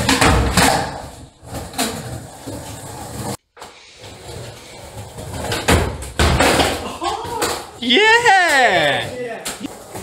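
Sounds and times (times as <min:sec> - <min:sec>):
skateboard wheels rolling on concrete: 0:00.0 - 0:10.0.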